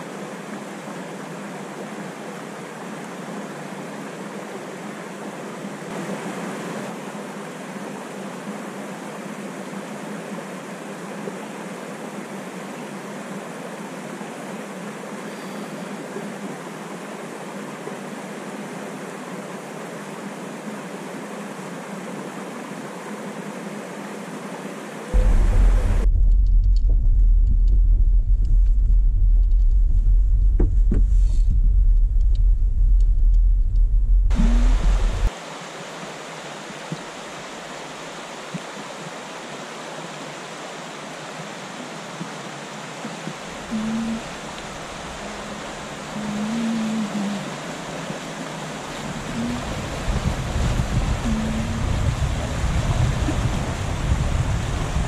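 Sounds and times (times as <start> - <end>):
creek water rushing: 0.0 - 26.1, 34.3 - 55.0
truck rumbling on dirt road: 25.2 - 33.3.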